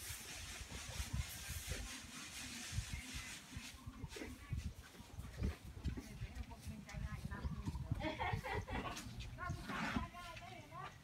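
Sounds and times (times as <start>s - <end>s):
wind rumble on microphone: 0.0s - 10.4s.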